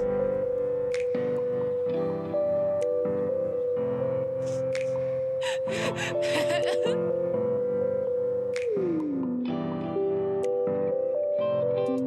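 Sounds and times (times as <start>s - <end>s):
soft background music: 0.0s - 12.0s
gasps and whimpers: 5.4s - 7.0s
woman sobbing: 5.4s - 7.1s.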